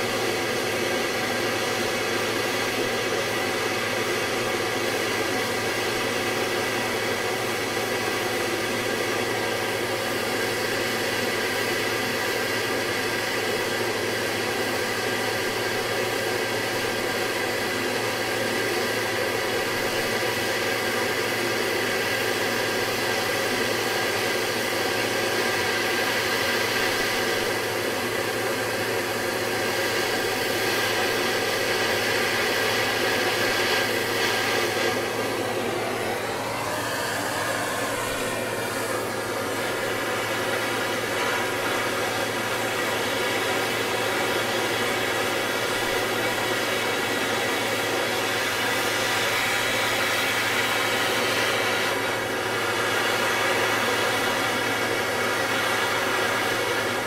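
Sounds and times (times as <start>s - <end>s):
gas torch hissing: 25.1s - 57.0s.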